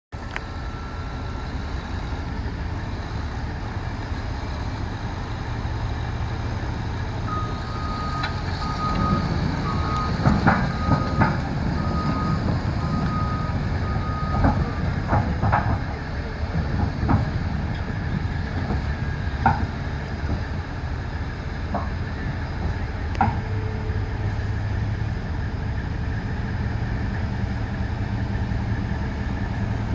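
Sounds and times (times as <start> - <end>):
dozer diesel engine running: 0.1 - 29.9
steel tracks clanking: 0.4 - 29.9
backup alarm beeping: 7.3 - 14.6.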